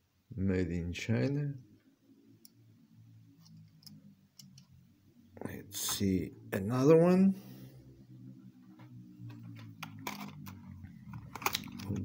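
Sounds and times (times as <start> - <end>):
low hum: 0.4 - 12.0.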